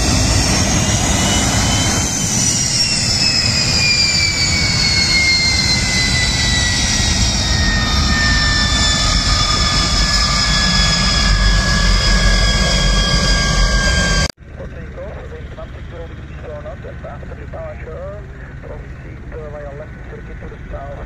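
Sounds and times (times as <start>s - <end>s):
aircraft turbine whine: 0.0s - 21.0s
low rumble: 0.0s - 21.0s.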